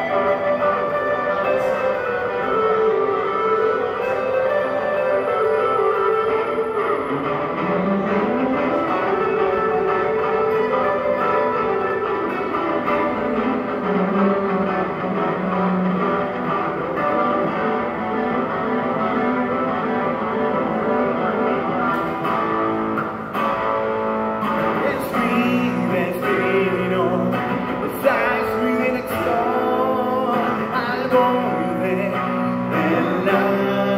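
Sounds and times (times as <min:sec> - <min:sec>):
looped electric guitar: 0:00.0 - 0:33.9.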